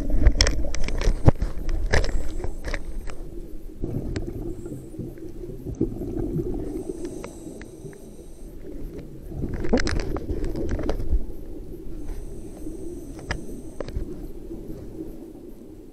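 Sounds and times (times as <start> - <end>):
underwater regulator bubbles gurgling: 0.0 - 15.9.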